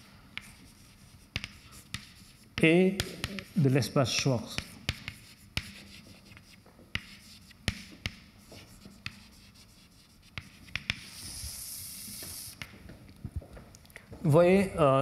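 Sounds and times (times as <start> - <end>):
chalk scratching on blackboard: 0.4 - 12.8
chalk tapping on blackboard: 0.4 - 12.8.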